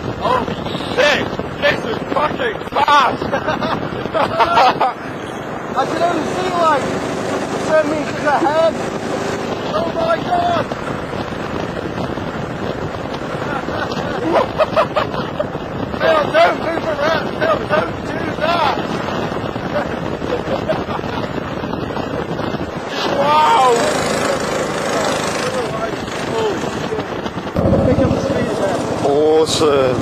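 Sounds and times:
wind buffeting microphone: 0:00.0 - 0:30.0
people laughing: 0:02.8 - 0:05.2, 0:13.4 - 0:15.6, 0:19.6 - 0:21.4
go-kart engine running: 0:03.4 - 0:30.0.

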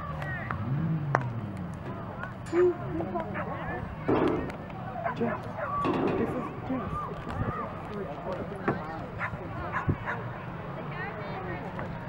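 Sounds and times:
murmur of spectators chatting: 0:00.0 - 0:12.0.

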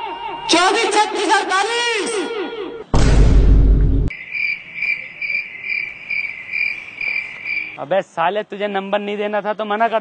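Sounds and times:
deep rumbling burst: 0:03.0 - 0:04.1
crickets chirping: 0:04.1 - 0:07.8.

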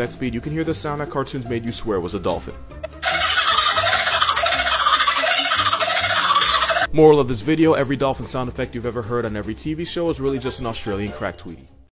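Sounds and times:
sped-up kookaburra chatter: 0:02.9 - 0:06.9.

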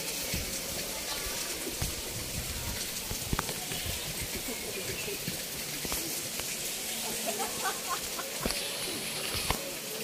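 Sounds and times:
steady hiss of water: 0:00.0 - 0:10.0.

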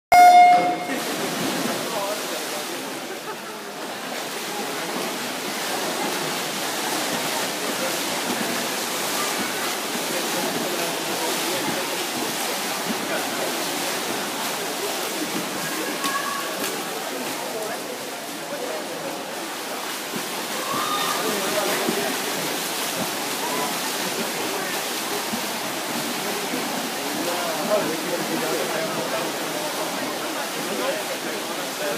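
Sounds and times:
swimmers splashing: 0:00.1 - 0:31.9.

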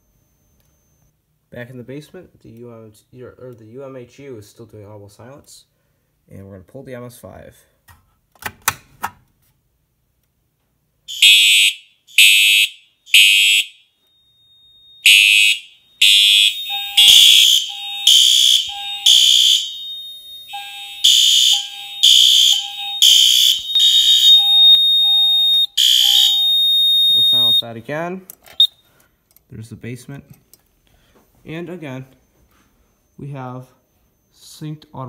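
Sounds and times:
fire alarm horn blasts: 0:11.1 - 0:27.7
thin steady high tone: 0:15.8 - 0:27.6
short low beeps: 0:16.0 - 0:27.6.

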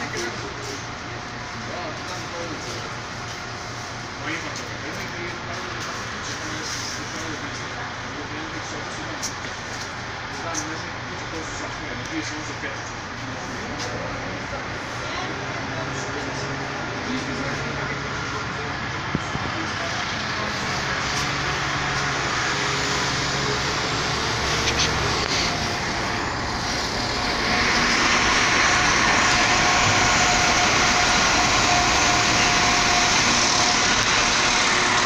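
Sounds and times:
murmur of people: 0:00.0 - 0:35.0
passenger train passing: 0:00.0 - 0:35.0
steady whine: 0:00.0 - 0:35.0
low hum: 0:16.5 - 0:35.0.

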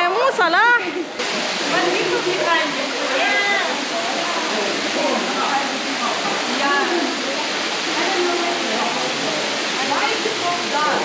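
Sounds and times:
stream water rushing: 0:00.0 - 0:11.0.

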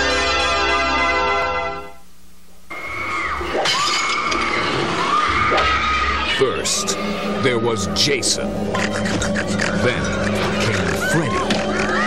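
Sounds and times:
long high-pitched screams: 0:02.7 - 0:07.7.

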